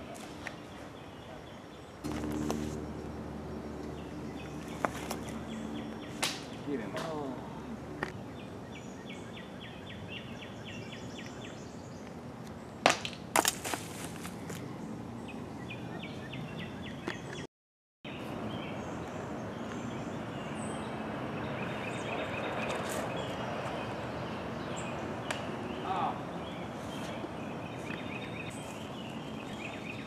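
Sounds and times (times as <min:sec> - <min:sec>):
songbirds trilling: 0:00.4 - 0:12.9, 0:14.3 - 0:17.5, 0:18.1 - 0:30.0.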